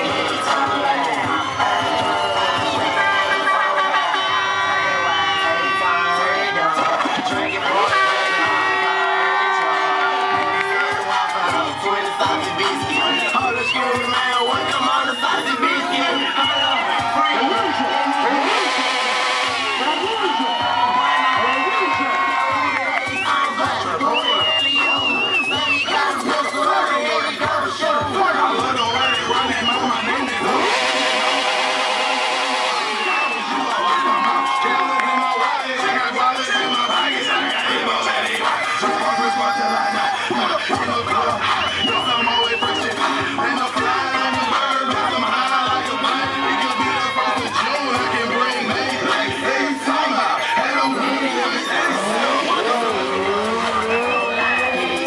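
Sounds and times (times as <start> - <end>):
crowd voices: 0.0 - 55.0
motorcycle engine revving: 18.1 - 20.2, 29.4 - 33.1, 51.8 - 55.0.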